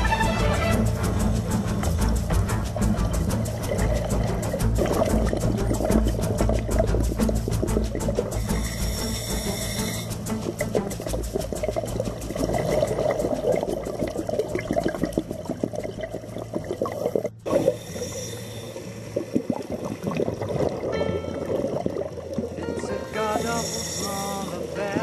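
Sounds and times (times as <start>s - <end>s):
bubbling water: 0.5s - 25.0s
underwater clicks crackling: 1.4s - 8.5s.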